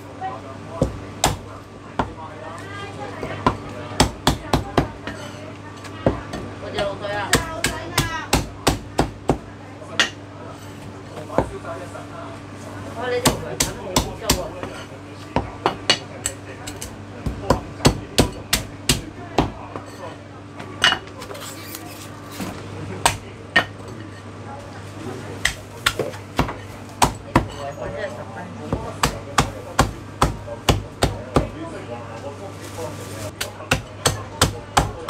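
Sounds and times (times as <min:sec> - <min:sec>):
cleaver chopping on wooden block: 0:33.4 - 0:35.0.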